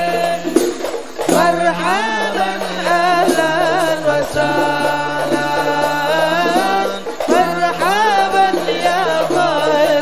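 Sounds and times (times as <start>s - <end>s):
person singing ornamented notes: 0.0s - 10.0s.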